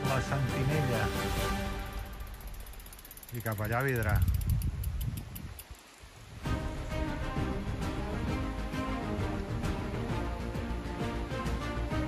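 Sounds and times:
background music: 0.0s - 2.9s, 6.4s - 12.0s
bike freewheel clicking rapidly: 2.1s - 5.9s.

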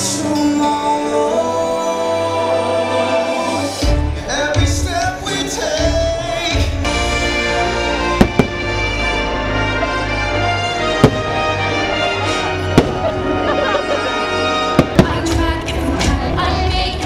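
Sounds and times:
loud show music: 0.0s - 17.0s
firework shells bursting: 8.2s - 8.9s, 10.9s - 11.8s, 12.7s - 13.2s, 14.7s - 15.4s.

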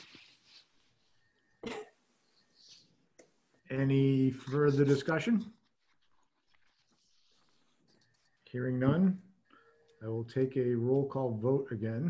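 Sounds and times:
person coughing: 1.6s - 2.0s.

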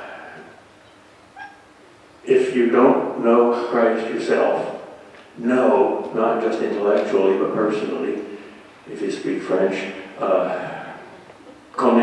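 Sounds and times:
man saying uh: 2.3s - 4.7s, 8.9s - 11.2s, 11.8s - 12.0s.

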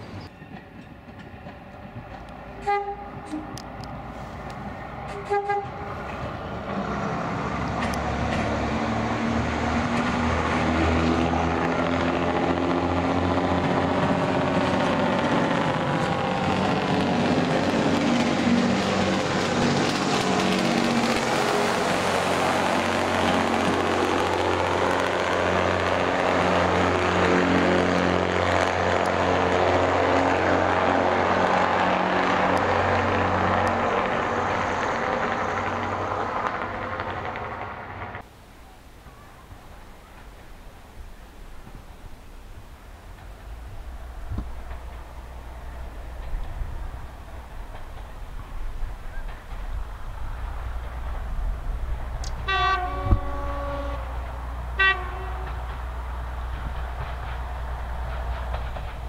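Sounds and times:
diesel train engines working: 0.0s - 59.0s
train horn toot: 2.6s - 3.6s, 5.1s - 6.0s, 52.4s - 54.2s, 54.8s - 55.8s.

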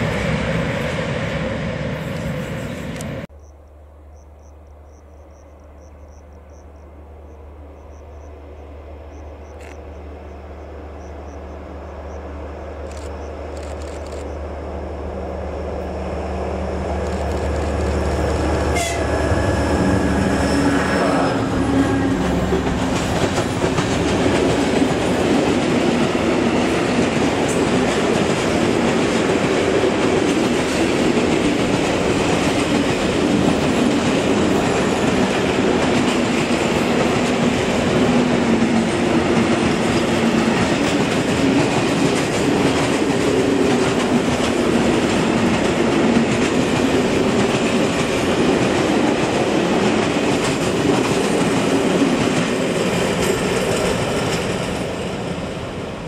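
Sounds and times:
freight train wheels on rails: 0.0s - 3.3s, 4.9s - 56.0s.

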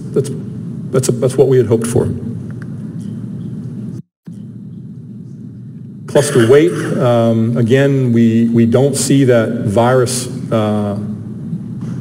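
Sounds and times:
low background rumble: 0.0s - 12.0s.

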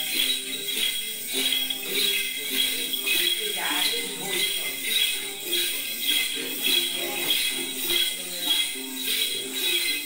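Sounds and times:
small metal bells jingling: 0.0s - 10.0s.

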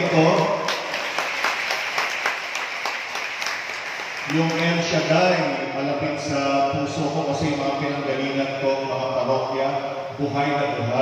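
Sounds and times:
crowd clapping: 0.0s - 5.1s.

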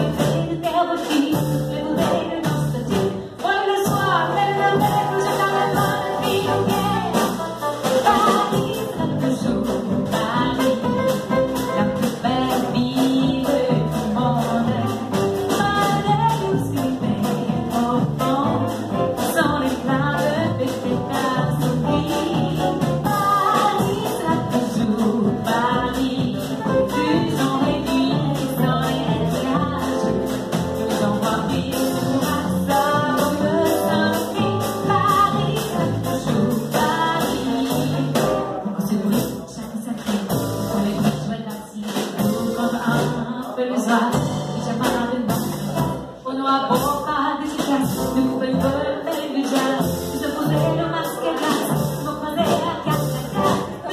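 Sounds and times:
drums with brushed cymbals: 0.0s - 53.9s
plucked double bass: 0.0s - 53.9s
woman singing: 0.0s - 53.9s.

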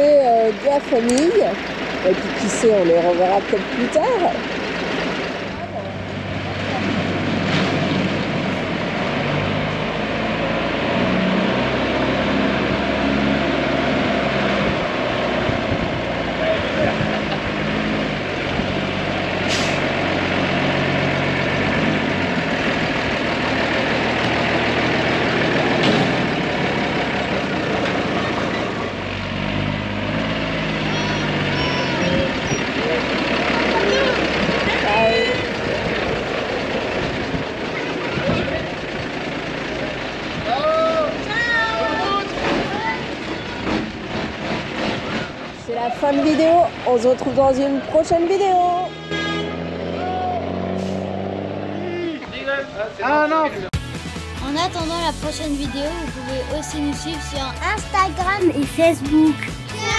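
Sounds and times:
truck diesel engine driving past: 0.0s - 52.9s
air brake hisses: 19.5s - 19.8s.

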